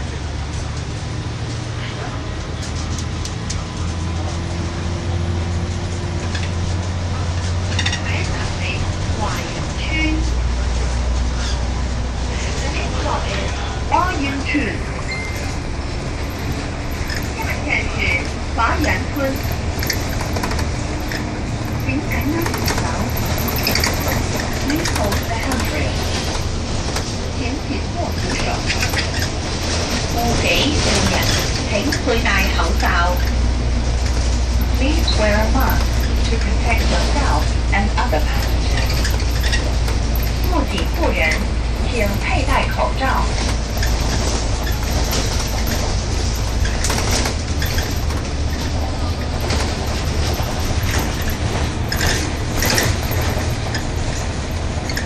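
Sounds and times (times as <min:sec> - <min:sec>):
bodywork rattles and clicks: 0:00.0 - 0:55.0
bus engine and road rumble: 0:00.0 - 0:55.0.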